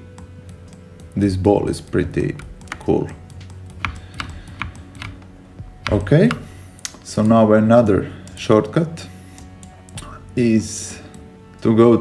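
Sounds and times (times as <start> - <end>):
low steady hum: 0.0 - 12.0
mouse and keyboard clicks: 2.4 - 7.4.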